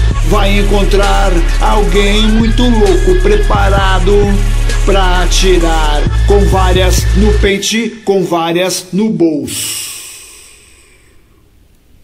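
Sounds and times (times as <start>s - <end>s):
cymbal crash ringing: 0.0s - 7.6s
faint hiss: 9.4s - 12.0s.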